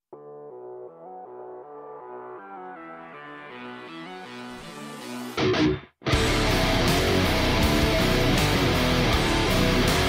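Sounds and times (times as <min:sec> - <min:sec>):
rock song on electric guitar: 0:05.2 - 0:10.0
guitar and band hits: 0:05.4 - 0:10.0.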